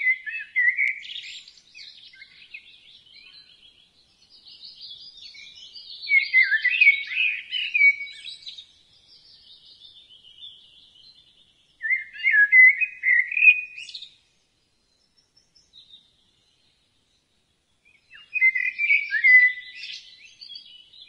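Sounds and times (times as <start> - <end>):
songbird warbling: 0.0 - 3.7, 18.1 - 20.8
faint bird chirps: 0.0 - 21.0.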